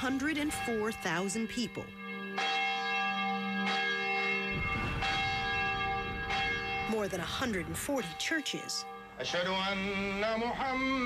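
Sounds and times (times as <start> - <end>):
church bells ringing: 0.0 - 10.8.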